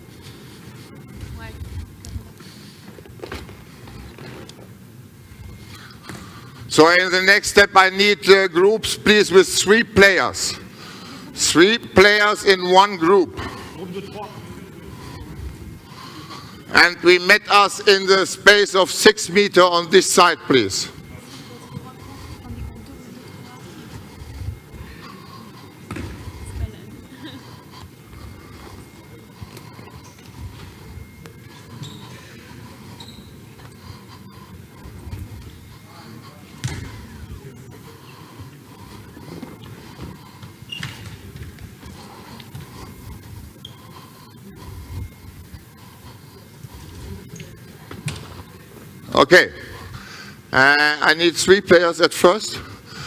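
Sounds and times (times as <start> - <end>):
indistinct voices in hall: 0.0 - 53.0
balls bouncing: 6.0 - 6.3, 25.5 - 26.7, 36.5 - 37.2, 38.9 - 43.8, 47.3 - 48.5.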